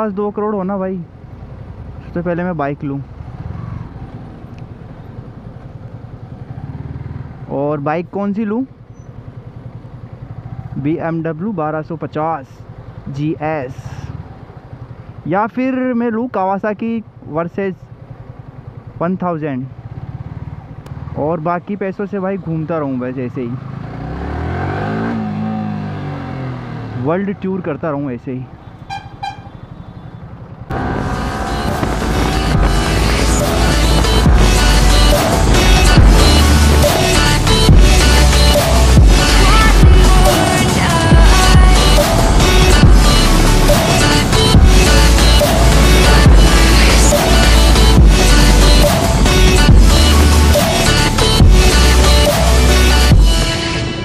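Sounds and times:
motorcycle engine running low: 8.6 - 11.0, 17.0 - 19.0, 19.6 - 21.4, 28.5 - 54.0
vehicle horn toots: 28.6 - 30.2
loud background music: 31.1 - 54.0
person speaking: 37.8 - 49.7.

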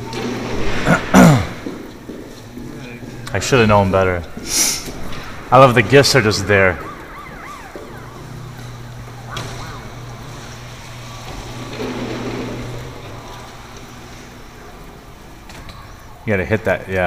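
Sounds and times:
low electric hum: 0.0 - 17.0
rising and falling electronic tones: 4.2 - 12.0.

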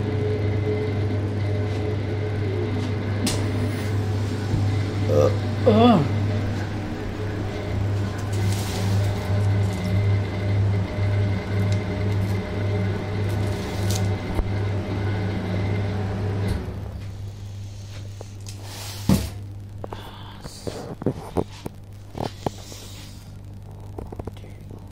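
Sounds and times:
refrigeration unit humming: 0.0 - 24.9.

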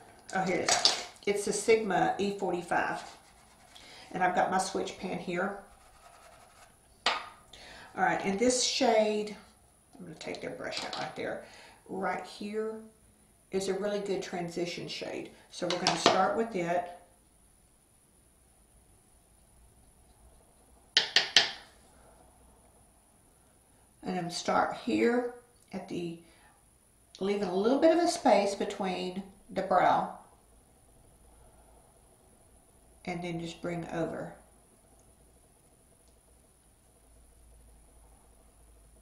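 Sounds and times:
person speaking: 0.3 - 6.1.

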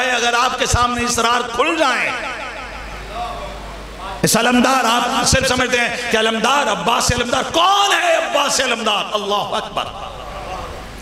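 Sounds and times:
man speaking over public address: 0.0 - 10.4
low electrical hum: 0.0 - 11.0.

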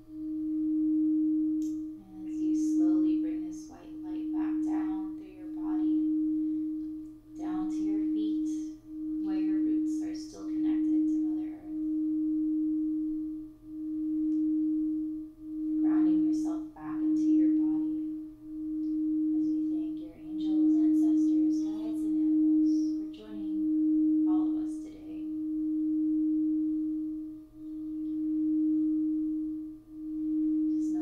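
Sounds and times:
singing bowl ringing: 0.0 - 31.0.

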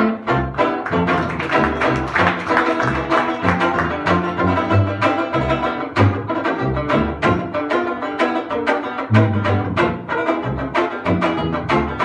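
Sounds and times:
banjo strumming chords: 0.0 - 12.0
tuba bass line: 0.0 - 12.0.

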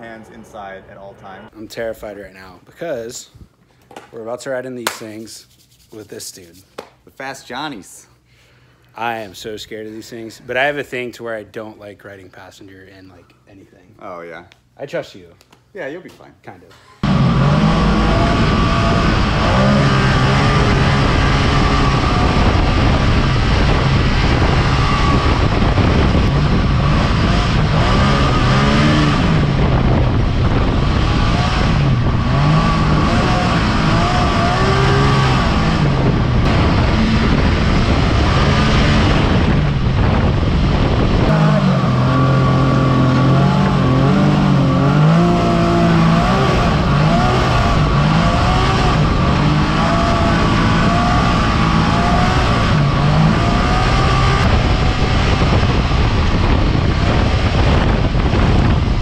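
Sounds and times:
steady high whine: 15.8 - 59.0
rushing wind and road noise: 17.0 - 59.0
utility vehicle engine revving: 17.0 - 59.0.

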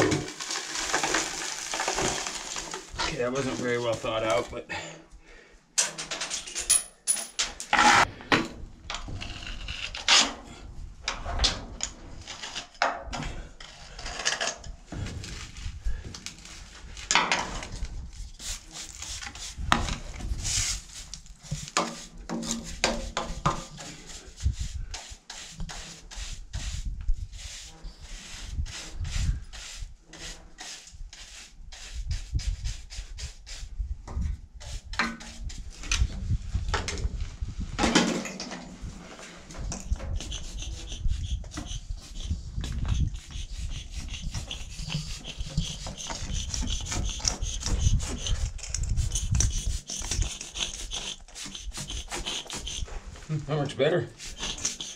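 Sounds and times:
tools rasping on metal: 39.8 - 53.0, 54.2 - 54.9.

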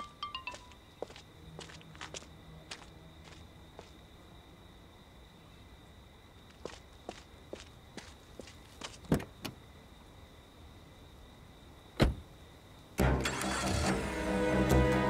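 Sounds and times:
footsteps on pavement: 0.3 - 4.0, 6.4 - 9.4
car door shutting: 12.0 - 12.2.

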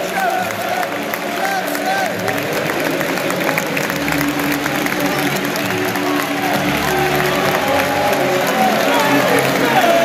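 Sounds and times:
scattered clapping: 0.0 - 10.0.

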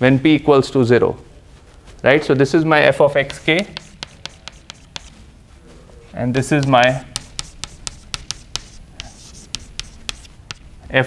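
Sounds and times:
chalk tapping on blackboard: 3.1 - 5.2, 6.4 - 10.7.

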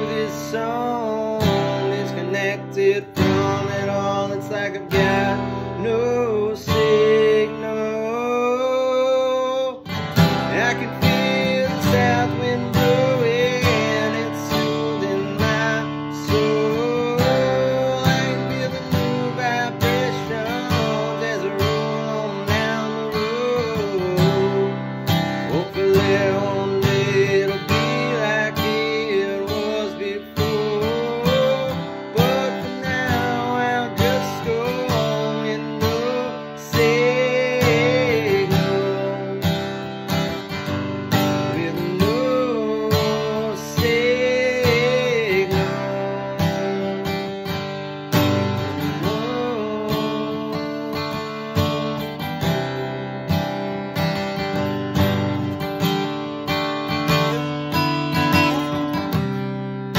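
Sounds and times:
acoustic guitar strumming: 0.0 - 59.9
wordless vocal melody: 0.0 - 59.9.

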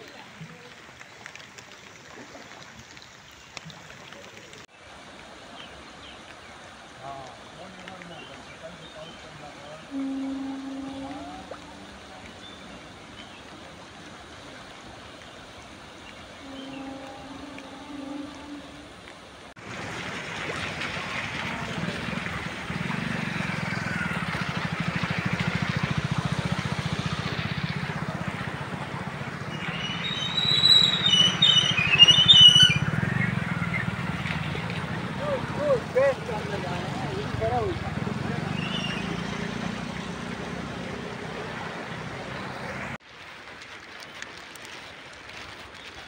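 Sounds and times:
floodwater rushing: 0.0 - 46.0
high chirps: 29.5 - 33.9.

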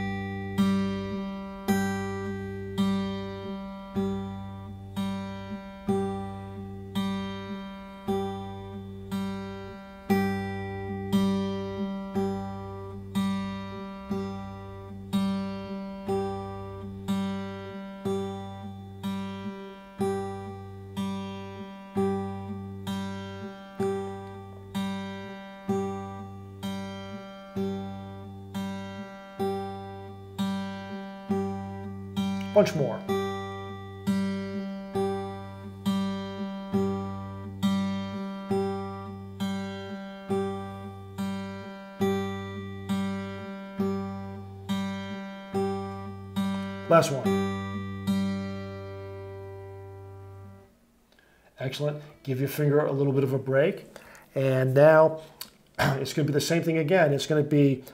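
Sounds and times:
fingerstyle acoustic guitar: 0.0 - 57.9.

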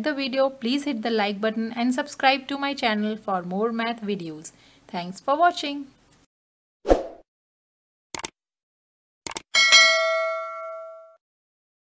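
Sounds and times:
bell-like ding ringing: 9.6 - 11.2.

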